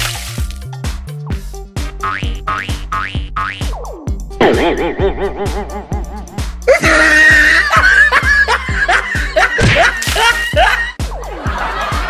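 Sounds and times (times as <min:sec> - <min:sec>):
comic music with thumping beat: 0:00.3 - 0:12.0
cartoon boing sound effect: 0:04.4 - 0:05.6.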